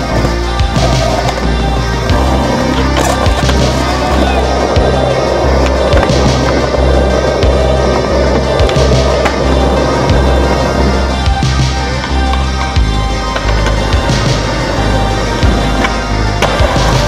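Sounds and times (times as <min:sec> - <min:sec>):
skateboard wheels rolling: 0:00.0 - 0:17.0
synth music with pulsing bass: 0:00.0 - 0:17.0
skateboard clacking on ground: 0:15.8 - 0:17.0.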